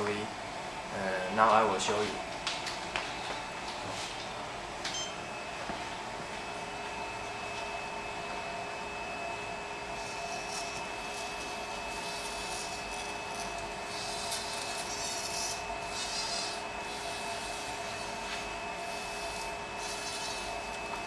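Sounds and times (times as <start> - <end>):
steady background hum: 0.0 - 21.0
robot servo motors whining: 10.0 - 20.8.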